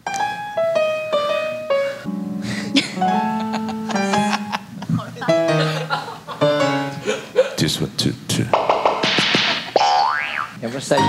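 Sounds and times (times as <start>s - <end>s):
piano-like keyboard melody: 0.0s - 7.4s.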